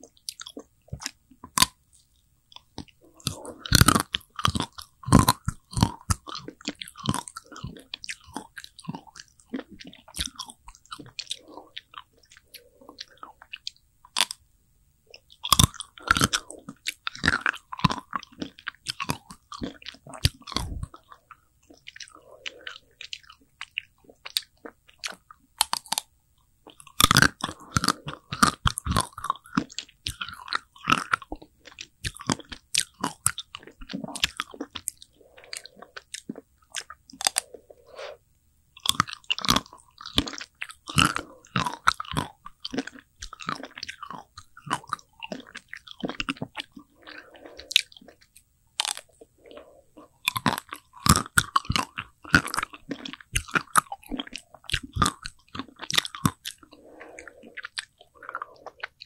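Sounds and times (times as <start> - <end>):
chewing: 0.0 - 14.4, 15.1 - 38.2, 38.8 - 59.0
crunching chocolate ice cream bar: 0.2 - 14.4, 15.1 - 26.1, 26.7 - 37.7, 38.8 - 59.0.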